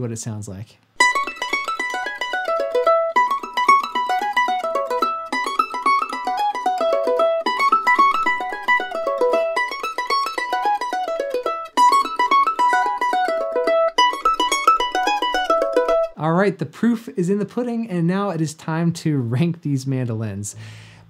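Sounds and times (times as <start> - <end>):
mandolin flatpicked run: 1.0 - 16.2.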